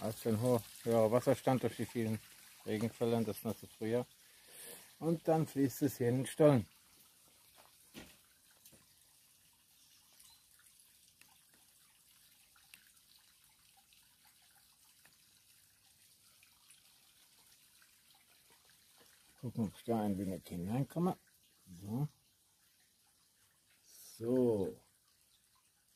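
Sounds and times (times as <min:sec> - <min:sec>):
water trickling and dripping: 0:00.0 - 0:25.9.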